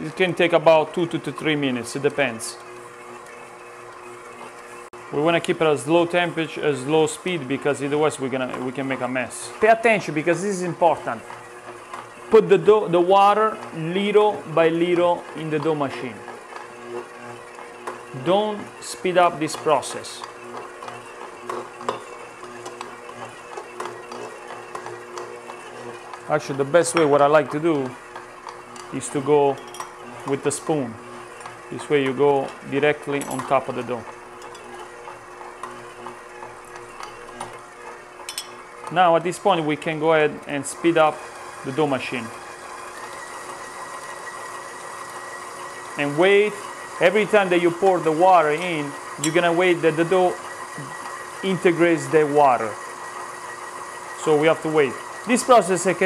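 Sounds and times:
stand mixer kneading dough: 0.0 - 56.0.

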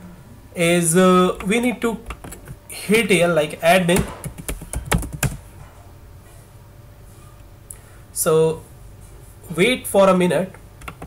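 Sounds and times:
keyboard keys clicking: 1.3 - 2.6, 4.0 - 5.4, 10.8 - 11.0.

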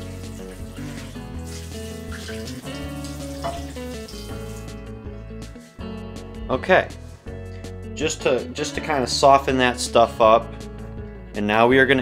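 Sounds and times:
faucet water into skillet: 0.0 - 4.8
background music: 0.0 - 12.0.

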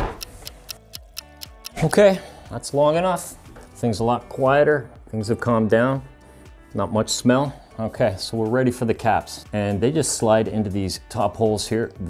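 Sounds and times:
clock ticking: 0.0 - 2.1
held musical tone: 0.2 - 2.2
man speaking: 1.7 - 2.8.

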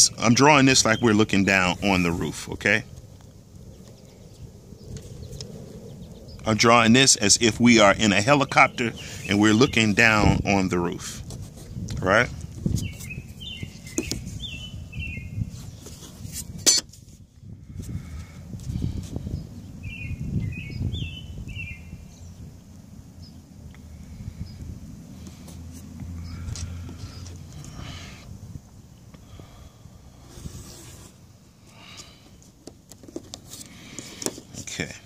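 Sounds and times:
bird chirping: 3.6 - 10.7, 12.6 - 15.9, 19.3 - 23.5.

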